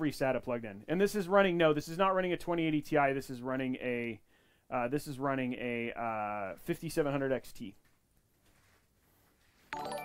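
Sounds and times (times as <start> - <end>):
bell-like alert jingle: 9.7 - 10.0.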